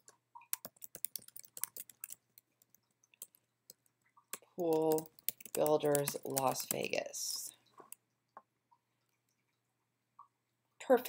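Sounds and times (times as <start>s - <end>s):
computer keyboard typing: 0.4s - 8.0s.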